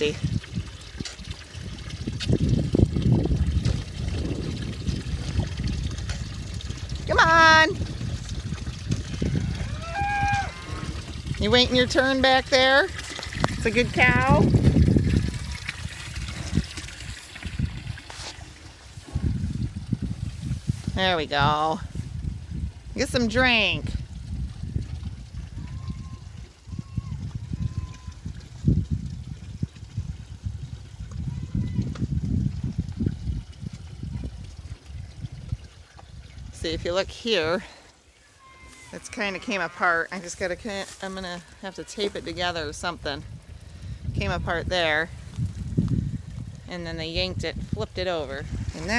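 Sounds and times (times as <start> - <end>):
low rumbling noise: 0.0 - 31.8
cattle slurping water: 0.0 - 48.9.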